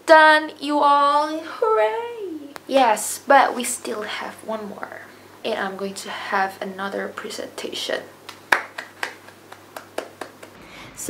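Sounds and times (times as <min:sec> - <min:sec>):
woman clapping hands: 0:08.3 - 0:10.6.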